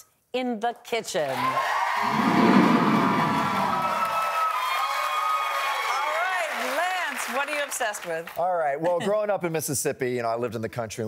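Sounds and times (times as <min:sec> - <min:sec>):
studio audience cheering: 0:01.3 - 0:07.8.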